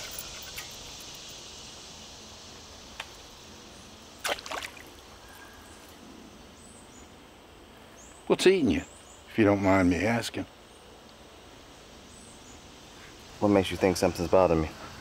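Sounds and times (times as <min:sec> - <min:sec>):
insect chorus chirring: 0:00.0 - 0:15.0.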